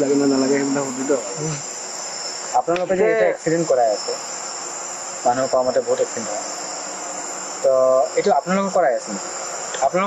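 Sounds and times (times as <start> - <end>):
crickets chirping: 0.0 - 10.0
person's voice: 2.6 - 4.2.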